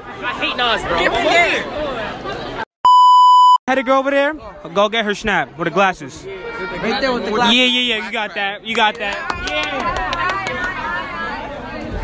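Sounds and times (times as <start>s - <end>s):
teenagers chattering: 0.0s - 2.6s, 4.3s - 12.0s
censor bleep: 2.9s - 3.6s.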